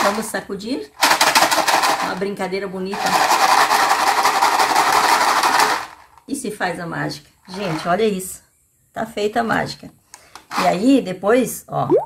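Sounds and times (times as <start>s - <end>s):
chocolate balls rattling in plastic container: 0.0s - 6.4s, 7.5s - 8.0s.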